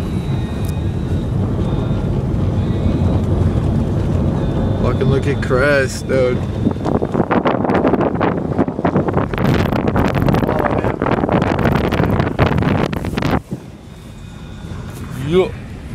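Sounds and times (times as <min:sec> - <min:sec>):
car engine worked hard: 0:00.0 - 0:15.9
rough rush of wind and snow: 0:00.0 - 0:15.9.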